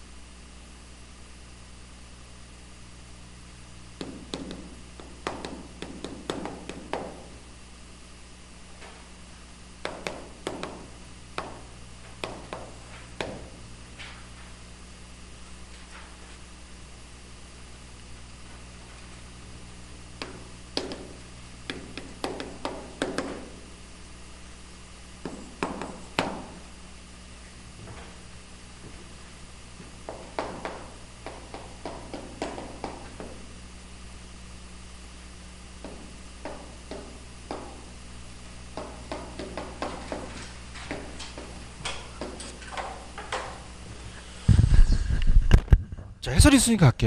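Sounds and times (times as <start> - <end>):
chalk tapping and scraping on blackboard: 4.0 - 7.2, 20.2 - 23.4
chalk tapping on chalkboard: 4.0 - 7.2, 9.8 - 11.6, 12.2 - 13.4, 20.2 - 23.4, 25.2 - 26.5, 30.1 - 33.4, 35.8 - 37.8, 38.8 - 41.5.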